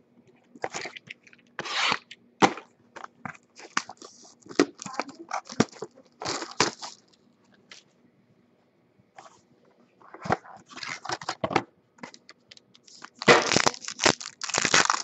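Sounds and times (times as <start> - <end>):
card box crackling and tearing: 13.0 - 15.0.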